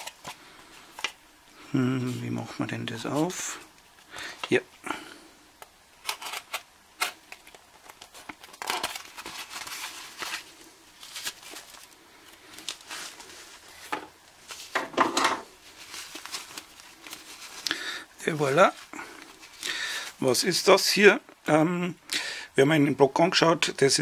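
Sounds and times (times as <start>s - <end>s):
paper and plastic crinkling: 0.0s - 1.2s, 6.0s - 20.3s.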